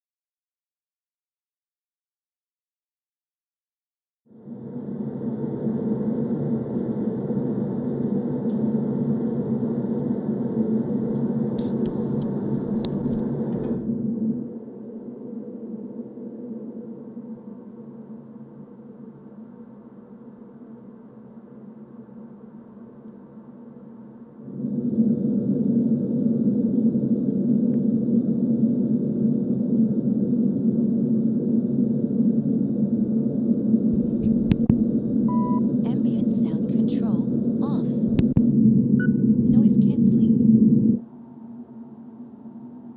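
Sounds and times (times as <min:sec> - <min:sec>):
airplane cabin rumble: 0:04.3 - 0:42.9
short beep: 0:35.3 - 0:35.7.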